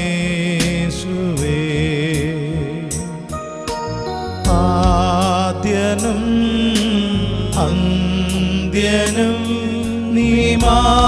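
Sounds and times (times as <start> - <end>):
sustained instrumental accompaniment: 0.0 - 11.0
solo voice singing hymn: 4.5 - 11.0.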